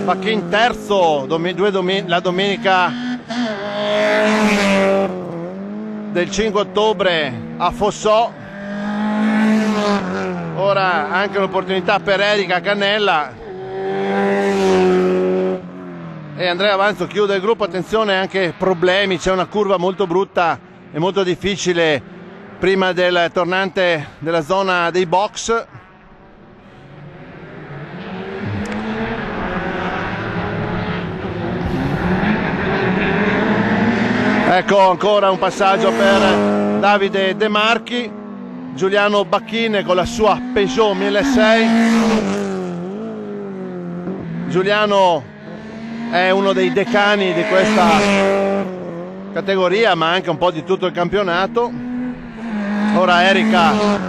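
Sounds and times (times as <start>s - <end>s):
race car engine at high revs: 0.0s - 54.0s.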